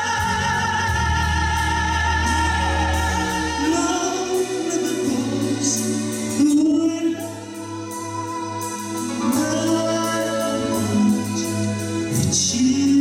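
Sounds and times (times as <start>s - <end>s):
band playing: 0.0s - 13.0s
man singing into a microphone: 0.0s - 13.0s.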